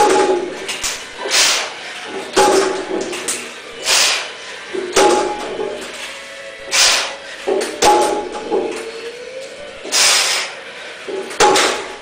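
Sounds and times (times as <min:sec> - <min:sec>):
sharp hissing exhale: 0:01.2 - 0:01.8, 0:03.8 - 0:04.4, 0:06.7 - 0:07.2, 0:09.9 - 0:10.6.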